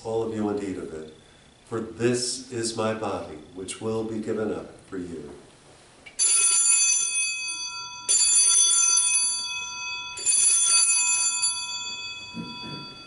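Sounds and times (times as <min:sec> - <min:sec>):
altar bells jangling: 0:06.2 - 0:13.0.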